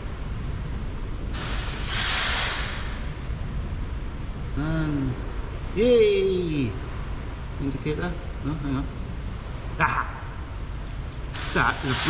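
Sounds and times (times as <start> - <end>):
steady low rumble: 0.0 - 12.0
air hissing: 1.3 - 3.2, 11.3 - 12.0.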